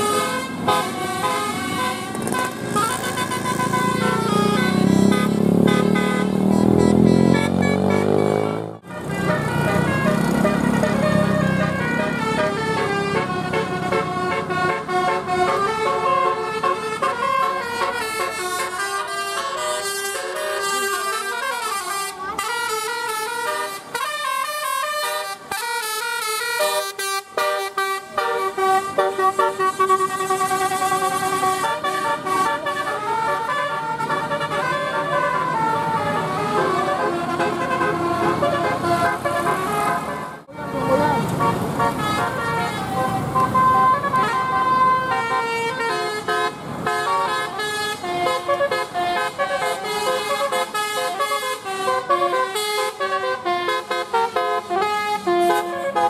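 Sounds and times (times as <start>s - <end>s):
bus horns playing tunes: 0.0s - 56.0s
engine and road noise: 0.0s - 56.0s.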